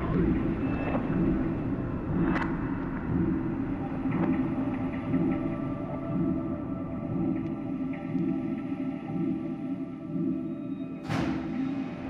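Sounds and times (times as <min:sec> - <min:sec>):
low rumbling electronic drone: 0:00.0 - 0:12.0.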